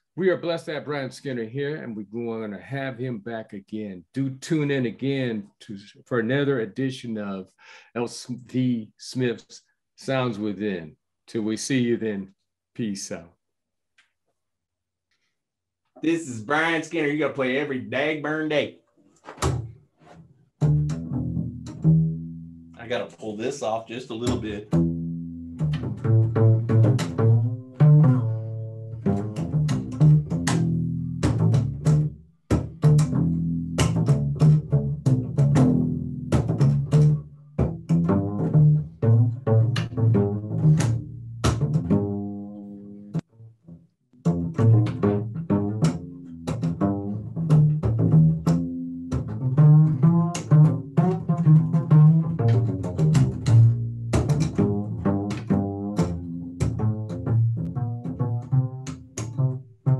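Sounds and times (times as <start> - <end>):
upright bass plucked: 0.0 - 7.4, 16.0 - 18.6, 20.6 - 59.9.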